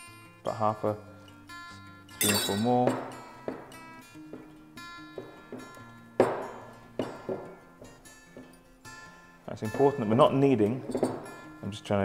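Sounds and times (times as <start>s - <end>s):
acoustic guitar music: 0.0s - 12.0s
hands knocking glass mixing bowl: 2.8s - 3.7s, 5.2s - 8.5s.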